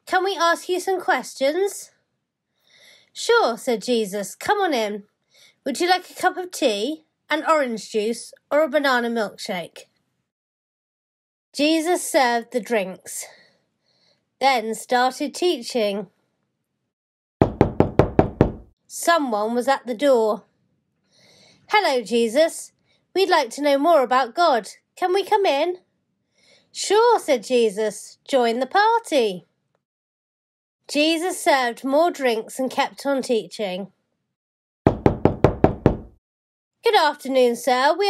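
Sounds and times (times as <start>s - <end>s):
rapid knocking on door: 17.4s - 18.7s, 34.9s - 36.2s.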